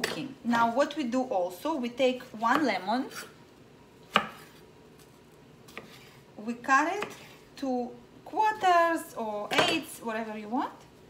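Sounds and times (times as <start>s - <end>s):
knife cutting lemon on board: 4.1s - 4.6s, 5.7s - 6.1s.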